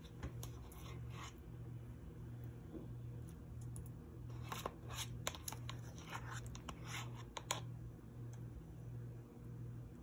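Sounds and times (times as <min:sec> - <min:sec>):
spoon scraping plastic tub: 0:00.0 - 0:01.4, 0:04.3 - 0:07.7.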